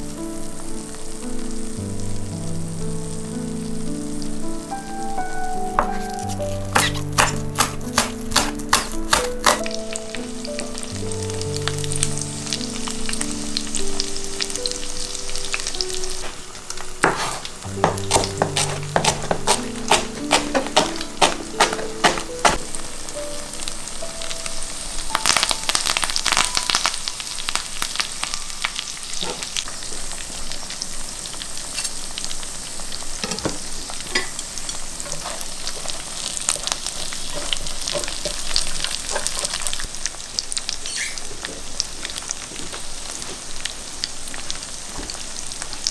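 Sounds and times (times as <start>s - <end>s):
tofu sizzling in oil: 0.0s - 45.9s.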